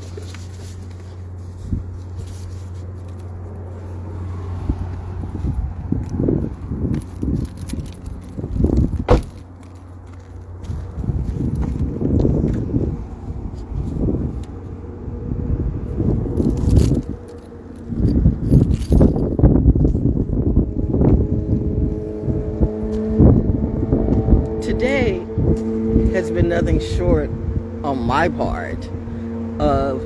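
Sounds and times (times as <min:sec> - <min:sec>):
phone microphone handling rumbles: 0:00.0 - 0:14.8, 0:15.5 - 0:24.6
low hum: 0:00.0 - 0:30.0.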